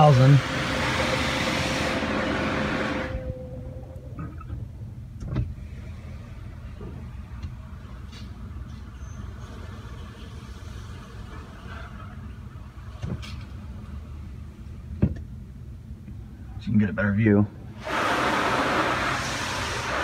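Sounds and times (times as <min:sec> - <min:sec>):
high-pressure water spray: 0:00.0 - 0:03.1, 0:17.8 - 0:20.0
low steady rumble: 0:00.0 - 0:20.0.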